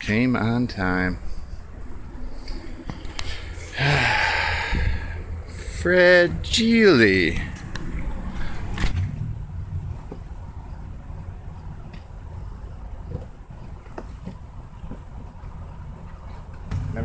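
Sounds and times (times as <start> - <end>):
steady low rumble: 0.0 - 17.0.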